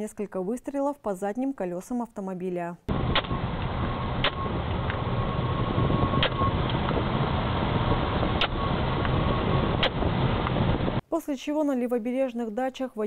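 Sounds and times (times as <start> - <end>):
car engine: 2.9 - 11.0
road noise inside a car: 2.9 - 11.0
sharp clicks: 3.1 - 5.0, 6.2 - 7.0, 8.4 - 9.2.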